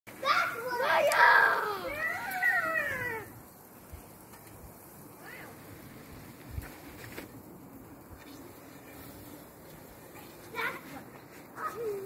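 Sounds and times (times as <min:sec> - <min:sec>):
child calling out: 0:00.2 - 0:03.3.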